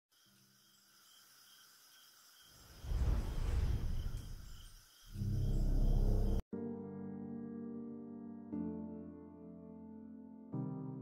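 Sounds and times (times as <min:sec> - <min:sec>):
faint night ambience: 0:00.1 - 0:06.4
loud rumbling whoosh: 0:02.8 - 0:04.7
deep low drone: 0:05.2 - 0:06.4.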